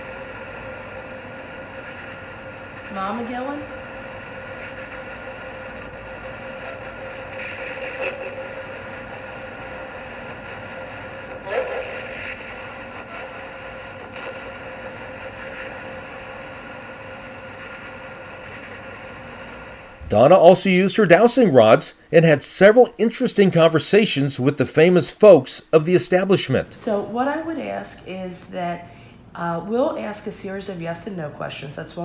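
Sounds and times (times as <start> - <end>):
spirit box hiss and hum: 0.0 - 27.9.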